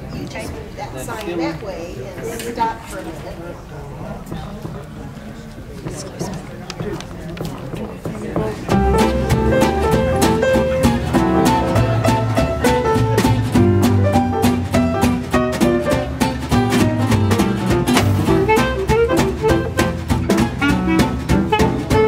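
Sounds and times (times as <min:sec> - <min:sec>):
jazz band playing: 0:08.1 - 0:22.0.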